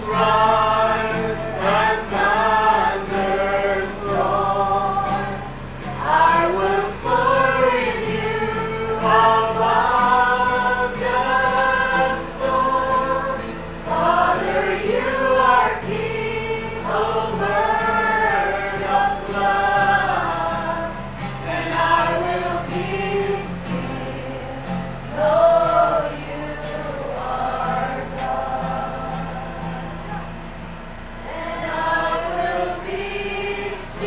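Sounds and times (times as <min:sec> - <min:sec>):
acoustic guitar chords: 0:00.0 - 0:34.0
congregation singing: 0:00.0 - 0:34.0.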